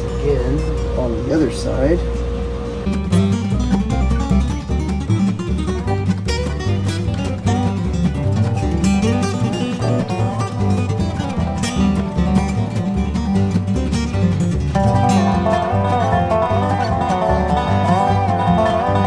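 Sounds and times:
bright sliding guitar melody: 0.0s - 19.0s
slide resonator guitar: 0.0s - 19.0s
steady bass line: 2.7s - 19.0s.

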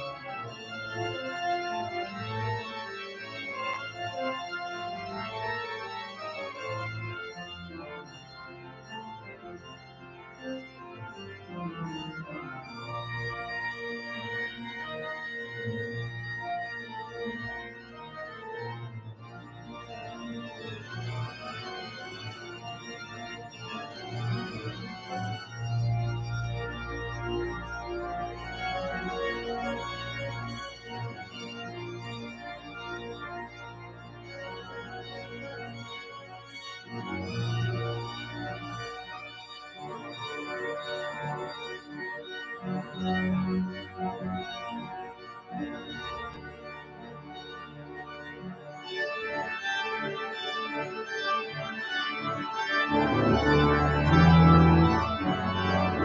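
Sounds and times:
deep organ pedal notes: 0.0s - 56.0s
pipe organ chords: 0.0s - 56.0s.

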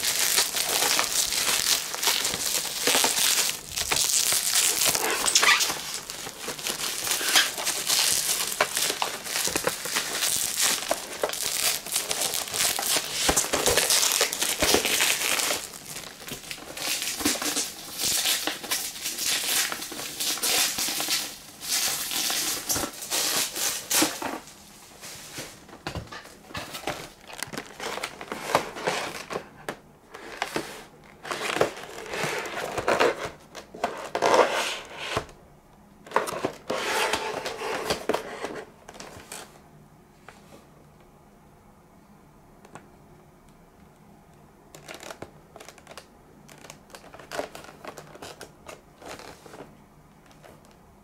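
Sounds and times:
plastic packaging crinkling: 0.0s - 34.5s, 44.7s - 50.8s.

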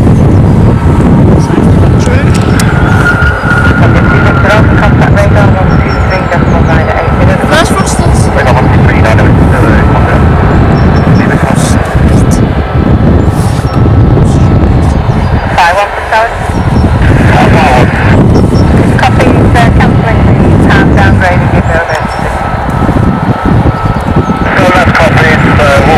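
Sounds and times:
jet engines rumbling: 0.0s - 25.9s
thin steady whine: 0.0s - 25.9s.

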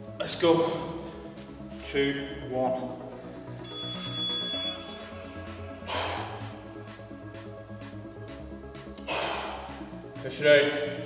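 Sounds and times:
background music with steady beat: 0.0s - 11.0s
man exhaling with effort: 5.8s - 6.6s, 9.0s - 9.9s.

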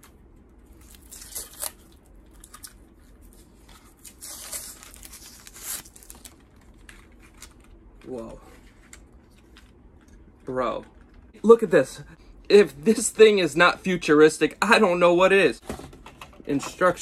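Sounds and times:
packaging tearing and rustling: 0.7s - 7.8s.

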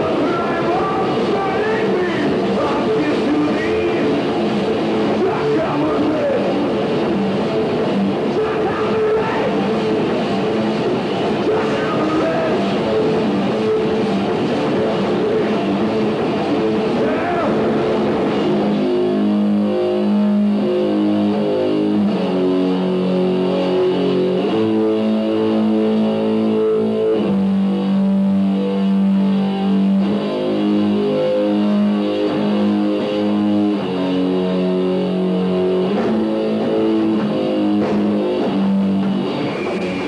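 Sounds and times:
electric guitar and bass chords: 0.0s - 40.0s
live rock band: 0.0s - 40.0s.

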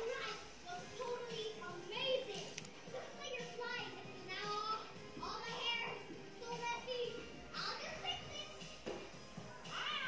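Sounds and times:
faint children's voices: 0.0s - 10.0s.

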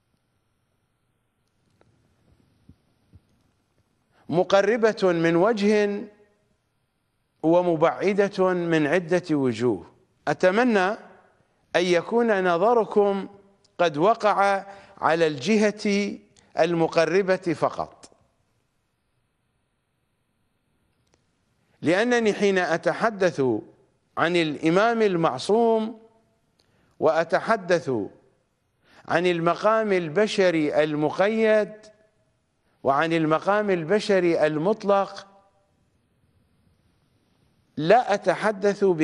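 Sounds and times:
man speaking: 4.3s - 6.2s, 7.4s - 18.2s, 21.8s - 26.1s, 27.0s - 28.3s, 29.1s - 32.0s, 32.8s - 35.4s, 37.8s - 39.0s.

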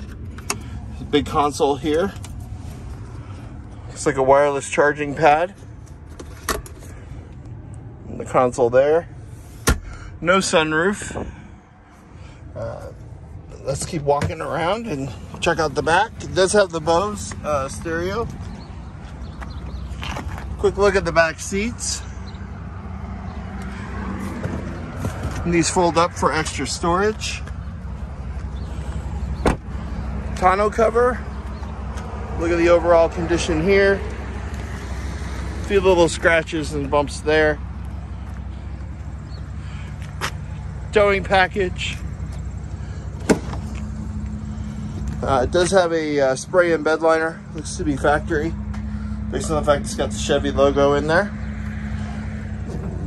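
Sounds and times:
steady low rumble: 51.2s - 53.0s.

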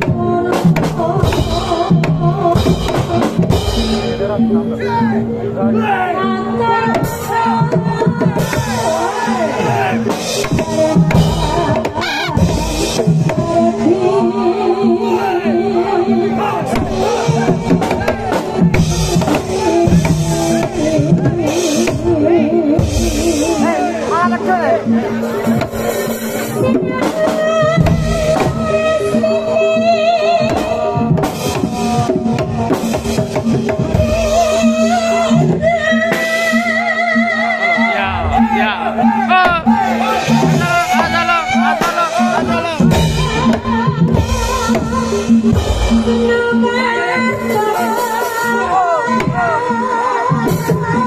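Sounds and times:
percussion ensemble drum strokes: 0.0s - 51.0s.

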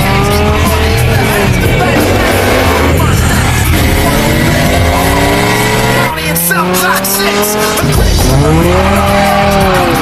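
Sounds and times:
race car engines accelerating: 0.0s - 10.0s.

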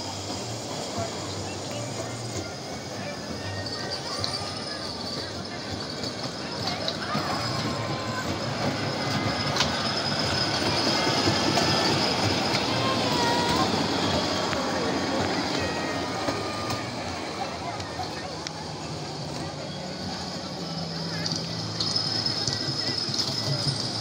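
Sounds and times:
miniature train rolling on rails: 0.0s - 24.0s.

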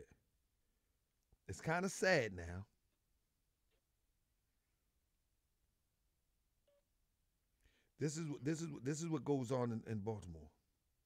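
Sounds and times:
faint short tone: 6.6s - 7.0s.

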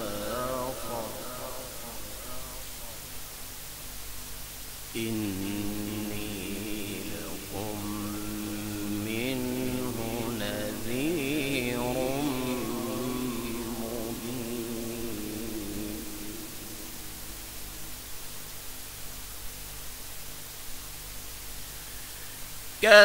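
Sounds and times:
man reciting melodically: 0.0s - 3.0s, 4.9s - 17.4s, 22.8s - 23.0s
steady low hum: 0.0s - 23.0s.

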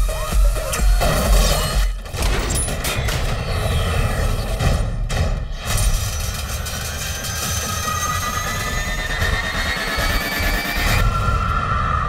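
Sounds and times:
mechanical grinding din: 1.0s - 11.0s
machine whine: 5.5s - 12.0s.

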